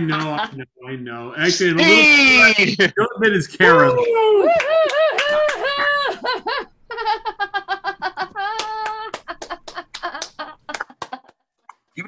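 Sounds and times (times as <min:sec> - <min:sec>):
person laughing and whooping: 0:03.8 - 0:06.6, 0:07.8 - 0:11.2
hand claps: 0:04.5 - 0:05.8, 0:08.5 - 0:11.4.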